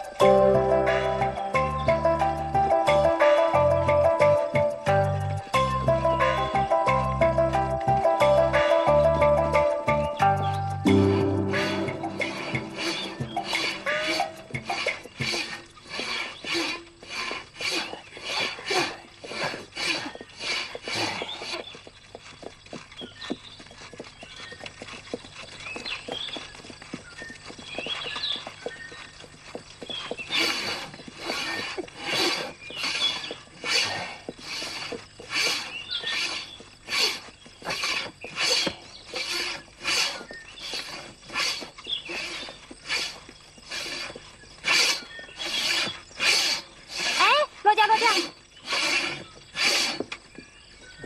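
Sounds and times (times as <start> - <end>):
music cue: 0.0 - 14.9
horse hooves clip-clopping: 0.0 - 51.0.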